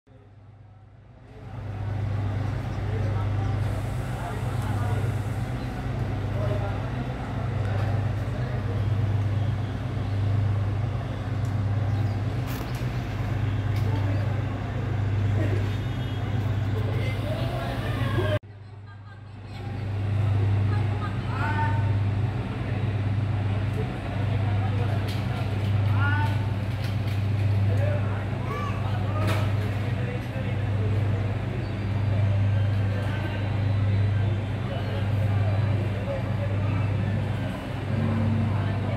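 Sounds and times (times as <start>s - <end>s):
faint voices: 0.2s - 38.9s
engine humming: 1.3s - 18.4s, 19.9s - 38.9s.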